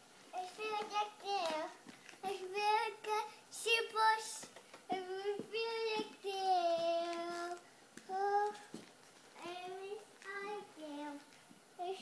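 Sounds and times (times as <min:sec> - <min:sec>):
girl singing: 0:00.3 - 0:12.0.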